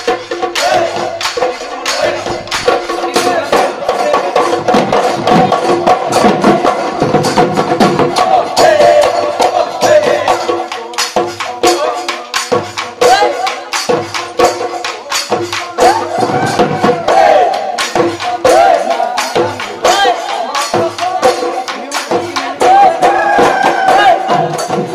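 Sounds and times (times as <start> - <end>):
clicking percussion: 0.0 - 24.9
drums in fast rhythm: 0.0 - 24.9.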